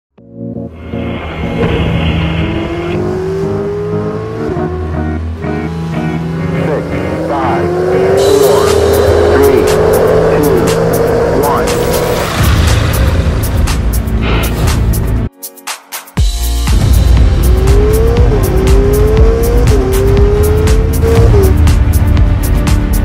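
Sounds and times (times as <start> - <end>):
electronic music with low beat: 0.2 - 23.0
racing car engine accelerating: 0.6 - 14.5, 16.9 - 22.3.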